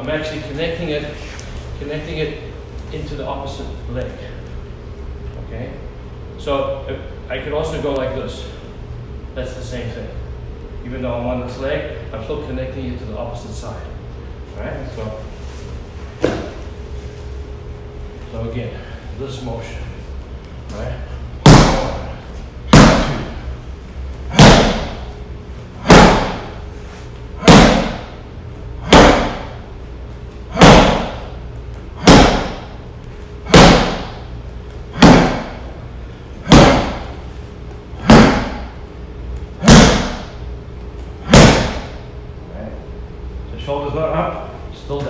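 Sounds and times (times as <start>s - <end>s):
fist punching striking pad: 21.4s - 22.0s, 22.7s - 23.4s, 24.3s - 25.0s, 25.8s - 26.6s, 27.4s - 28.2s, 28.8s - 29.6s, 30.5s - 31.3s, 32.0s - 32.8s, 33.4s - 34.2s, 34.9s - 35.6s, 36.4s - 37.2s, 38.0s - 38.8s, 39.6s - 40.4s, 41.2s - 42.0s.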